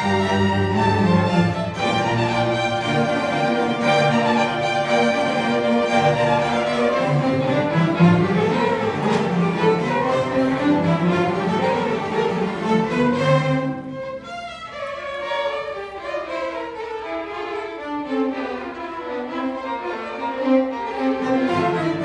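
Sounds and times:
string orchestra playing: 0:00.0 - 0:22.0.

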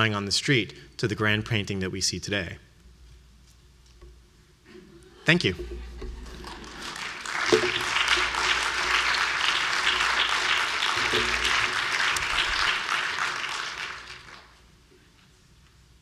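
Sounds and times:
audience applauding: 0:06.1 - 0:14.6.

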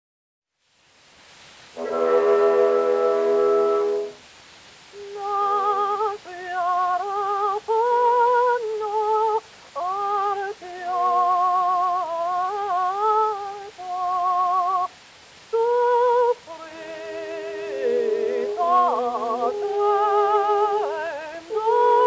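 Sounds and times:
woman singing with vibrato: 0:04.9 - 0:22.0.

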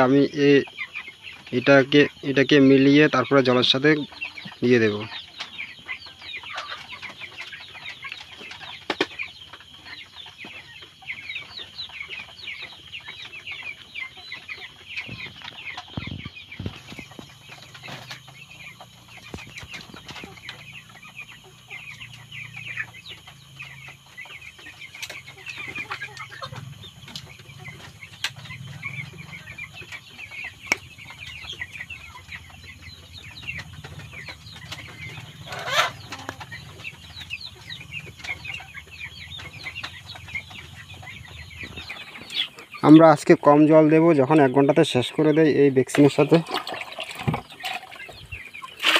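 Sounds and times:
chickens chirping and peeping: 0:00.0 - 0:48.9
loud chicken call: 0:35.5 - 0:36.4, 0:46.4 - 0:48.9.

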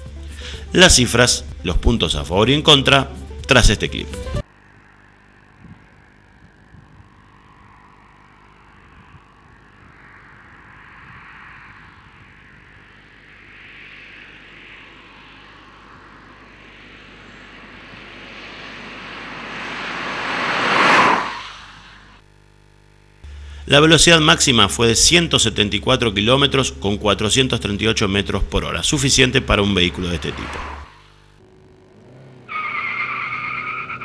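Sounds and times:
car passing at high speed: 0:04.4 - 0:22.2, 0:29.0 - 0:33.6.

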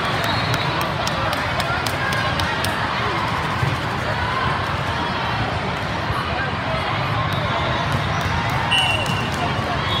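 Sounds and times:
hubbub of many voices: 0:00.0 - 0:10.0.

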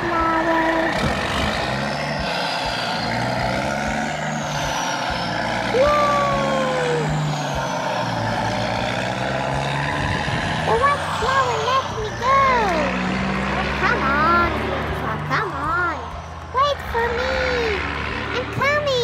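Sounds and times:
truck engine drone: 0:00.0 - 0:19.0
person making vocal sounds: 0:05.7 - 0:07.3.

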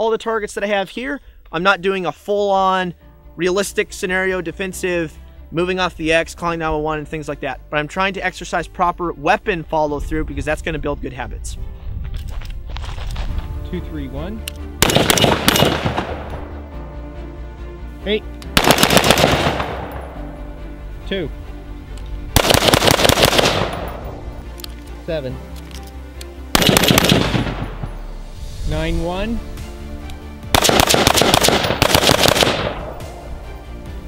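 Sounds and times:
rifle semi-automatic shots: 0:14.8 - 0:16.2, 0:18.6 - 0:20.0, 0:22.4 - 0:24.0, 0:26.6 - 0:27.8, 0:30.6 - 0:32.9
gunshot echo: 0:14.8 - 0:16.5, 0:18.6 - 0:20.2, 0:22.4 - 0:24.1, 0:26.6 - 0:28.1, 0:30.5 - 0:33.1.

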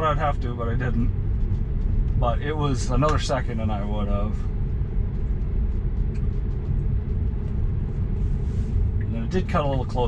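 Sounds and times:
road and tyre rumble in car: 0:00.0 - 0:10.0.

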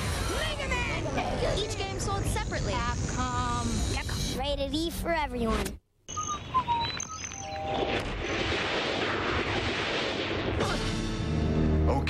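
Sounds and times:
songbirds chirping: 0:06.1 - 0:07.9.

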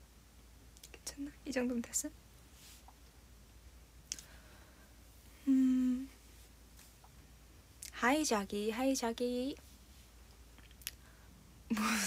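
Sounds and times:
woman humming a note: 0:05.4 - 0:06.1.

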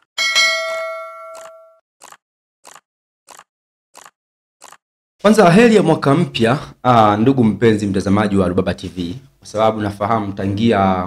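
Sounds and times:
notification bell ding: 0:00.2 - 0:01.8.

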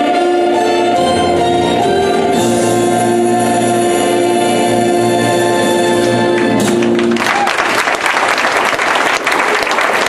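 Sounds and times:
choir singing: 0:00.0 - 0:06.7.

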